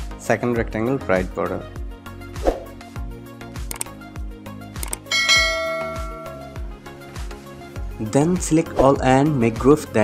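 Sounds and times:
background music with beat: 1.6s - 8.1s
bell chime: 5.1s - 6.7s.

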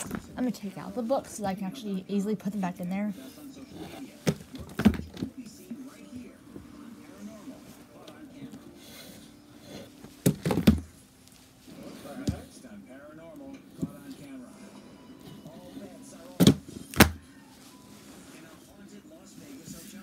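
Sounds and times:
books thumping on floor: 4.2s - 5.4s, 10.1s - 11.0s, 16.4s - 17.2s.

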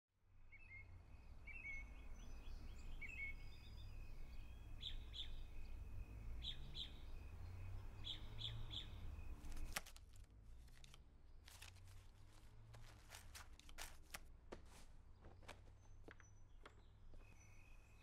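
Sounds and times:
birds chirping: 0.6s - 9.9s, 14.6s - 18.0s.

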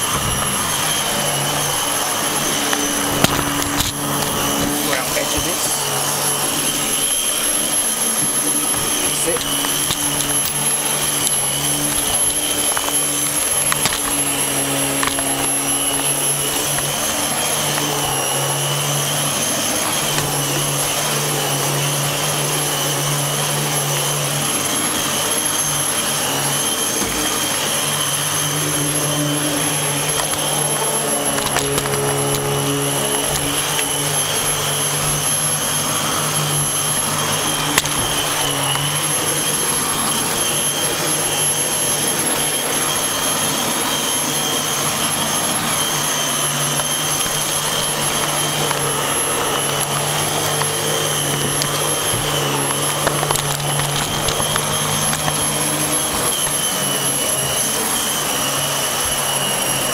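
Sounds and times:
vacuum cleaner running: 0.0s - 59.9s.

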